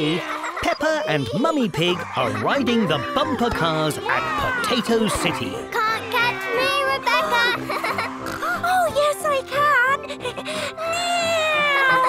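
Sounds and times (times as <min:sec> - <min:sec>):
cartoon characters laughing: 0:00.0 - 0:12.0
light background music: 0:00.0 - 0:12.0.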